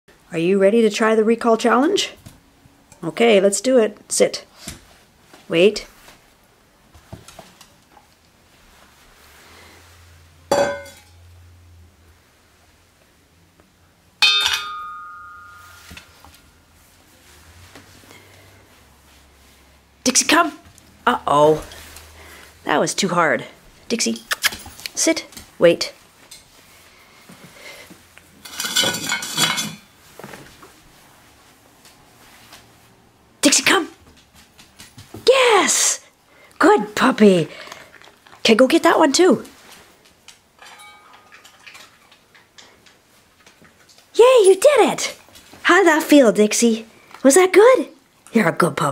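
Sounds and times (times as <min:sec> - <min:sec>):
metal dog bowl clanking: 0:10.5 - 0:11.1, 0:14.2 - 0:15.9, 0:28.4 - 0:29.9, 0:40.6 - 0:42.0.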